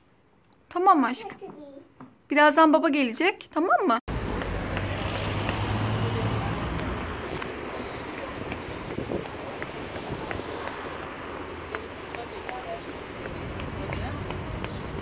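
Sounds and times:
traffic: 4.1s - 15.0s
wind on microphone: 6.6s - 11.0s.

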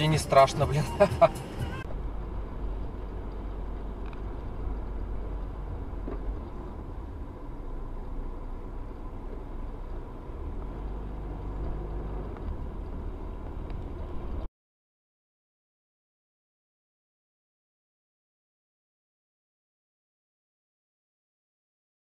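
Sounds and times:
car engine and road rumble: 0.0s - 14.5s.

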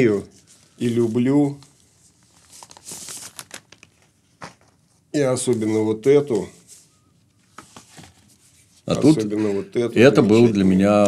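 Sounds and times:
plastic sleeve crinkling: 0.3s - 6.0s.

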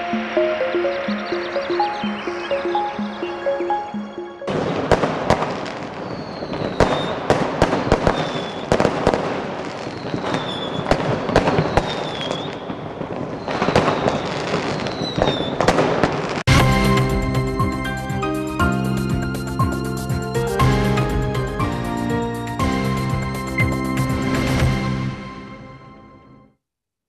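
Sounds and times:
jingle of repeated notes: 0.0s - 4.9s
firework whistles: 4.5s - 15.9s
fireworks crackling and banging: 4.5s - 16.6s.

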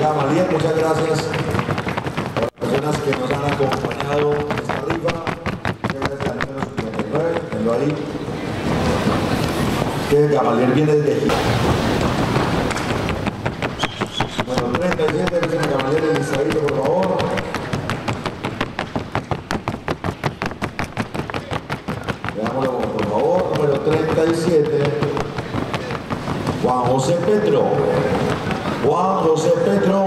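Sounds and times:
horse hooves on wooden board: 0.0s - 10.5s, 11.3s - 30.0s
man's voice: 14.5s - 17.5s, 22.4s - 25.2s, 26.6s - 28.2s, 28.8s - 30.0s.

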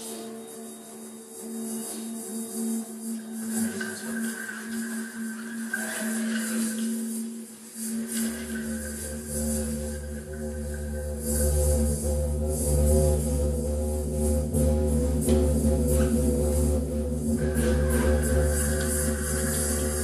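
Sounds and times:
electronic drone tones: 7.9s - 20.0s
deep low drone: 8.0s - 20.0s.

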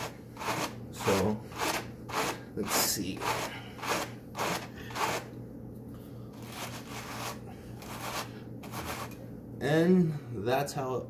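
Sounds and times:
hand carders brushing wool: 0.0s - 5.3s, 6.3s - 9.2s.

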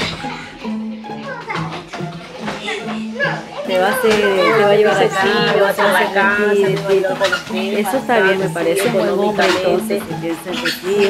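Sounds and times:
children playing: 0.0s - 11.0s
woman's voice: 3.7s - 11.0s.

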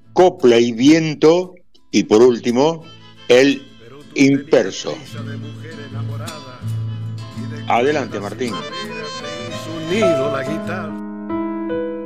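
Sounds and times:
folk guitar plucked notes: 1.1s - 12.0s.

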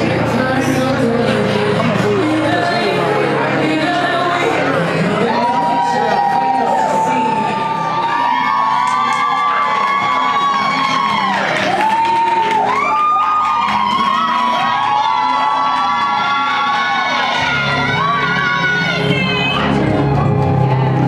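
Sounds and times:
loud music: 0.0s - 21.0s
crowd cheering and whooping: 3.9s - 21.0s.

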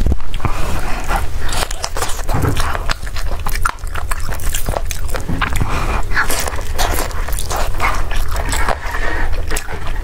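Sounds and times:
biting and chewing food: 0.0s - 10.0s.

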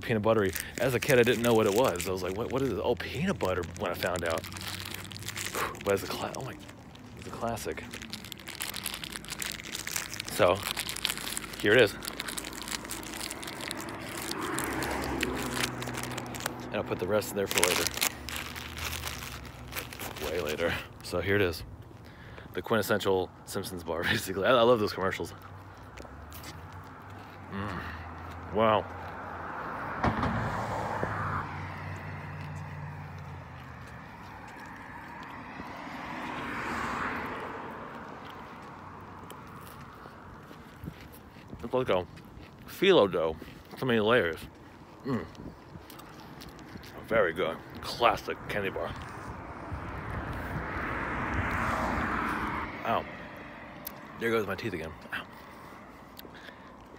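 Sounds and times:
crunching crispy candy bar: 0.0s - 21.2s, 31.9s - 49.1s
vehicle engine hum: 0.0s - 56.9s
vehicle passing rush: 0.0s - 56.9s
plastic wrapper crinkling: 0.3s - 20.8s.

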